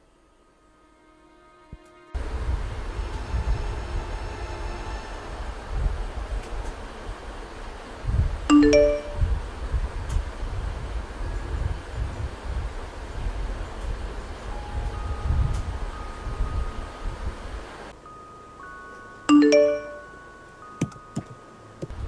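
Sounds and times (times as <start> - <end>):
steady low rumble: 2.2 - 17.9
notification chime rising notes: 8.5 - 9.3, 18.7 - 21.4.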